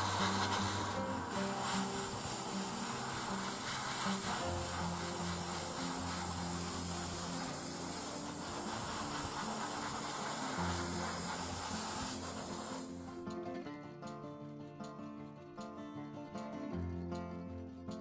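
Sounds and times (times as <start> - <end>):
airbrush hissing: 0.0 - 13.2.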